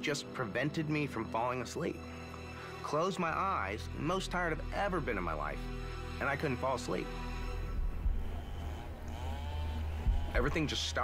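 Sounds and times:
low rumbling music drone: 0:00.9 - 0:11.0
faint wavering tones: 0:07.2 - 0:10.6.

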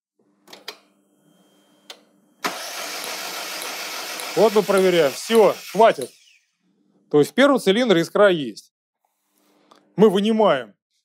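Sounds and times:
starter motor cranking engine: 0:02.4 - 0:06.3.

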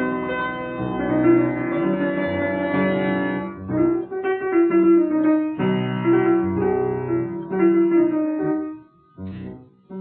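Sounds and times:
solo piano melody: 0:00.0 - 0:10.0.

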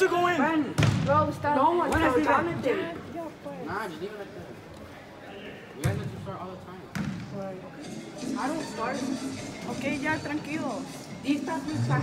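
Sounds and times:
voices in indoor hall: 0:00.0 - 0:12.0
soccer ball kicked thud: 0:00.8 - 0:01.2.

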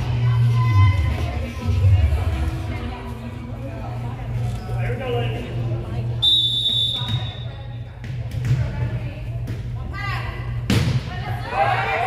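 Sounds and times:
referee's whistle blast: 0:06.2 - 0:07.4.

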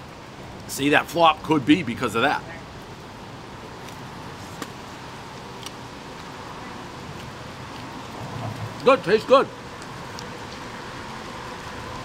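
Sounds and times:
street background hiss: 0:00.0 - 0:12.0.

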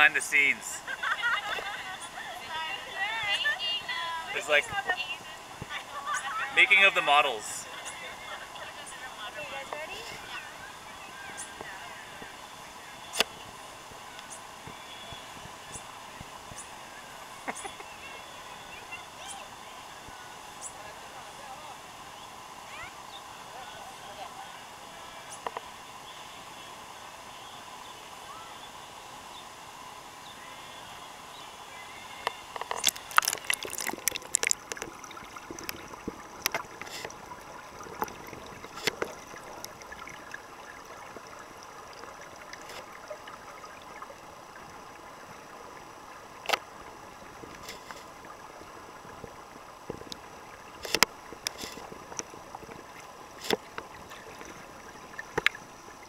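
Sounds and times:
bubbles clicking and crackling: 0:32.3 - 0:45.8, 0:46.4 - 0:56.0.

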